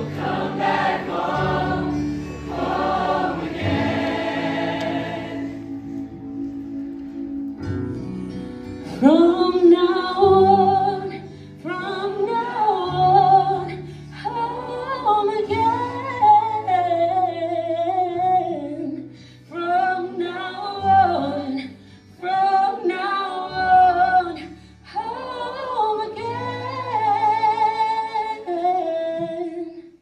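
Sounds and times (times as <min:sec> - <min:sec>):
choir singing: 0:00.0 - 0:06.3, 0:25.0 - 0:27.0
low held accompaniment notes: 0:00.0 - 0:15.4.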